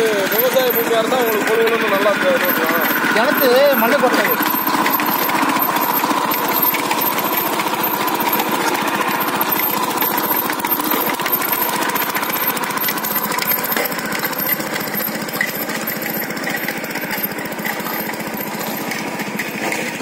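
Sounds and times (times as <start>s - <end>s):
small engine running under load: 0.0s - 20.0s
tines tilling soil: 0.0s - 20.0s.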